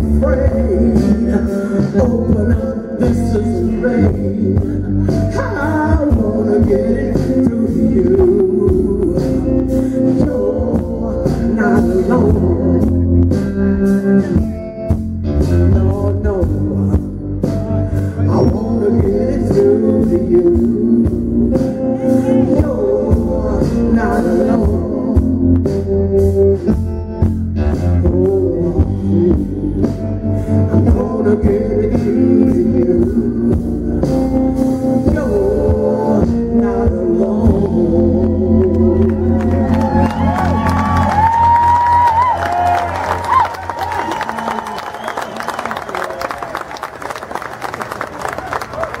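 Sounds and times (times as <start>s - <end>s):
electric guitar: 0.0s - 46.3s
live rock band playing: 0.0s - 47.2s
applause: 39.0s - 49.0s
crowd cheering: 39.0s - 49.0s.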